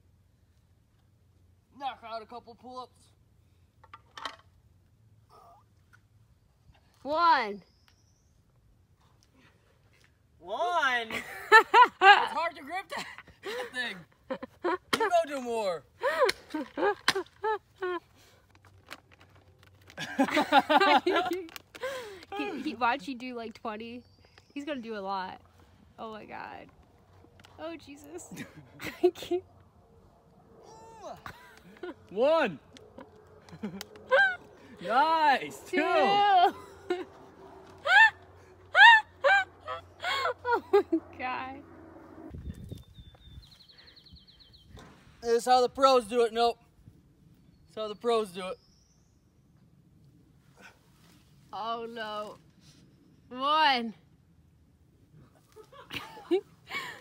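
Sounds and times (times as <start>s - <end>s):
woman laughing: 11.2s - 13.7s, 14.3s - 15.0s, 16.0s - 18.2s, 20.0s - 22.8s, 28.1s - 29.5s, 32.9s - 34.6s, 35.7s - 37.2s, 37.8s - 41.2s, 55.5s - 57.0s.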